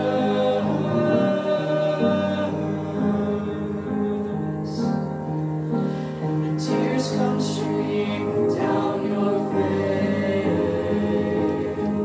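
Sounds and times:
vocal ensemble singing harmony: 0.0 - 12.0.

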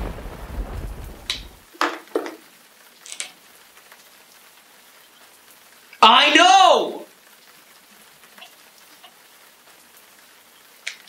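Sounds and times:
thunder rolling: 0.0 - 1.7
low steady background noise: 0.0 - 11.0
rain: 0.0 - 11.0.

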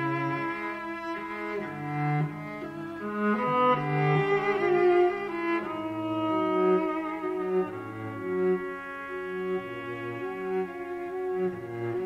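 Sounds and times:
string section bowed notes: 0.0 - 12.0.

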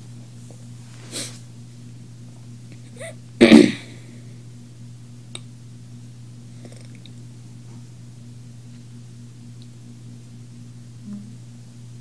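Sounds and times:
low hum with pulsing upper tone: 0.0 - 12.0.

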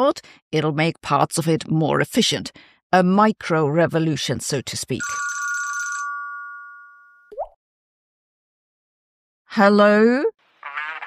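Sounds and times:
desk telephone ringing: 5.0 - 7.3.

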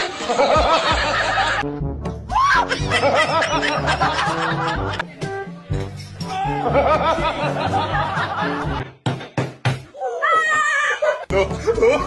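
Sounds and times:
background music with bass line: 0.4 - 8.9, 11.3 - 12.0
person laughing: 10.1 - 12.0.

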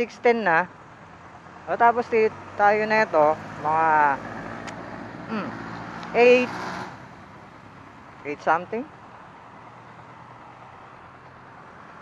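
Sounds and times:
street traffic: 0.0 - 12.0
motorcycle engine humming: 0.7 - 12.0
person speaking: 5.3 - 6.5, 8.2 - 8.9.

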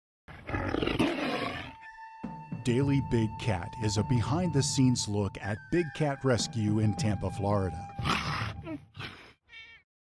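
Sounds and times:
big cat roaring: 0.4 - 1.7, 8.0 - 8.6.

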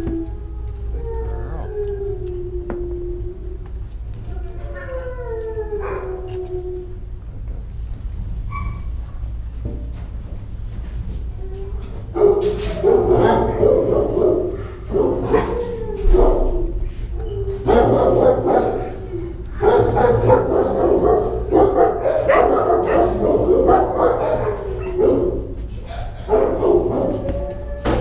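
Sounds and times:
dogs barking: 12.0 - 28.0.

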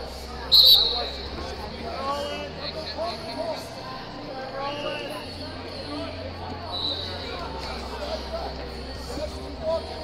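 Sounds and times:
crowd chatter: 0.0 - 10.0
shrill whistle blast: 0.5 - 1.2.

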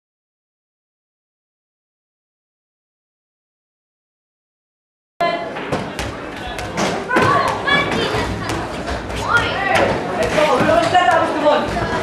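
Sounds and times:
voices of people: 5.2 - 12.0
rubber ball thudding: 5.6 - 12.0.

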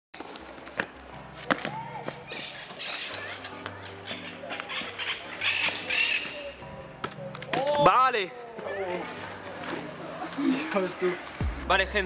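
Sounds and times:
backing music with low notes: 8.6 - 12.0.

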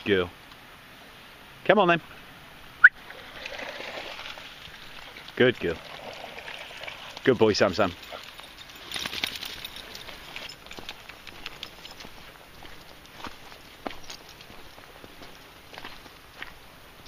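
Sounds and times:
footsteps on gravel and leaves: 7.8 - 16.7.

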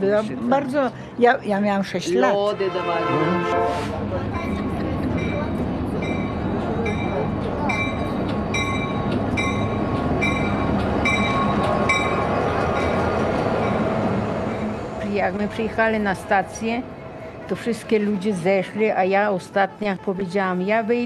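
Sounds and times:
diesel locomotive engine rumble: 0.0 - 21.0
bell ringing in steady strokes: 5.2 - 13.9.

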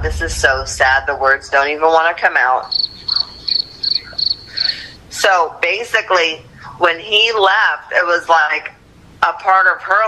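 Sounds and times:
cricket chirping: 2.6 - 5.0.

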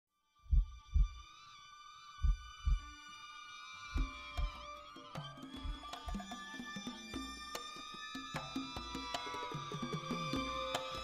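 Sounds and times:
heartbeat thumps: 0.5 - 1.2, 2.2 - 2.9.

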